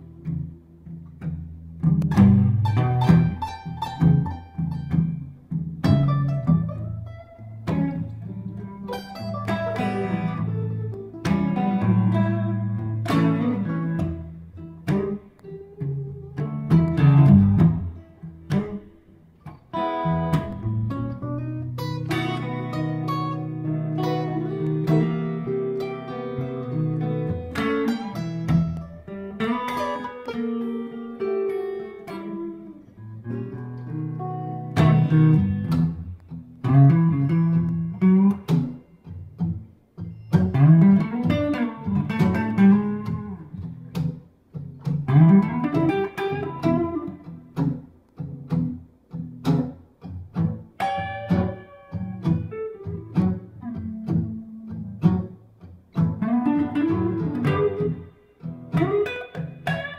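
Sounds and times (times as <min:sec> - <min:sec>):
acoustic guitar playing blues: 0:00.0 - 0:59.9
electric guitar bending notes: 0:00.0 - 0:59.9.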